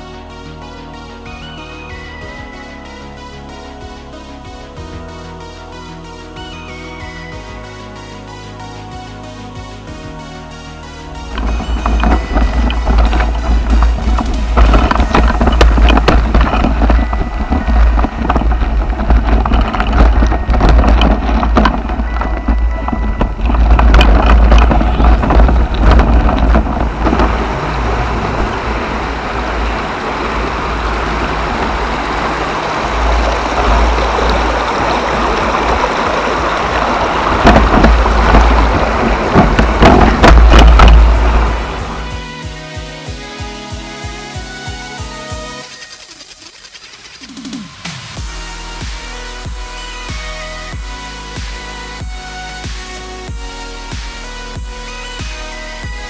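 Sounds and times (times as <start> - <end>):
tyres crunching on gravel: 11.0 - 42.6
wind buffeting microphone: 11.1 - 42.4
bike rattling and knocking: 11.1 - 47.6.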